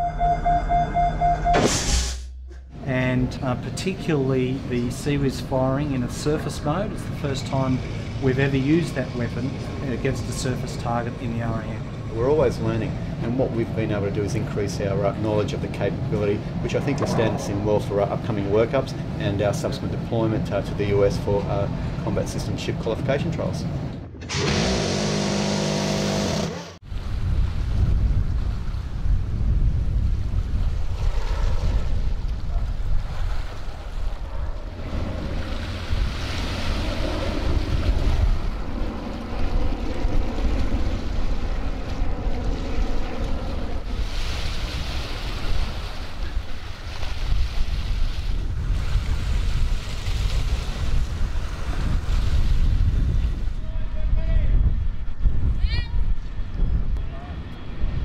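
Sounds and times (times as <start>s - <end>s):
wind and sea rumble: 0.0s - 26.1s, 26.8s - 58.0s
wind on microphone: 15.8s - 19.2s, 26.8s - 58.0s.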